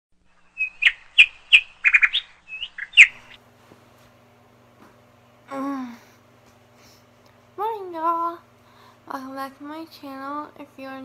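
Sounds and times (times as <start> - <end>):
quick bird chirps: 0.4 - 3.4.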